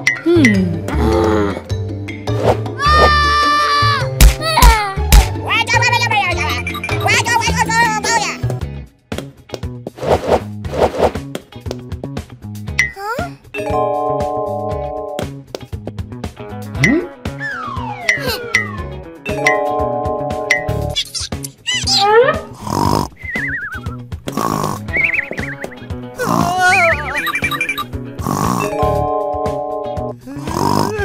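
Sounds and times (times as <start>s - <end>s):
cartoon background music: 0.0s - 9.3s, 10.0s - 31.0s
falling glide effect: 17.4s - 19.0s
warbling whistle tones: 23.2s - 24.0s, 24.9s - 25.8s.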